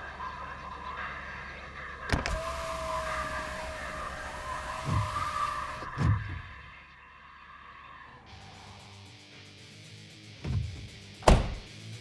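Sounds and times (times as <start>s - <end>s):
power window motor whining: 2.1s - 6.5s.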